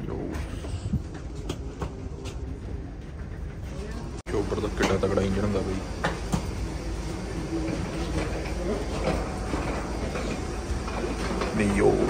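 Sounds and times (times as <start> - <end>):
wheeled bags rumbling and clattering: 7.4 - 12.0.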